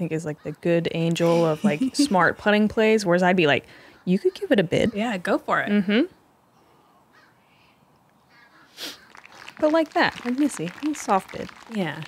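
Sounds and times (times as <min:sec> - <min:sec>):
faint crow caws: 0:06.6 - 0:09.5.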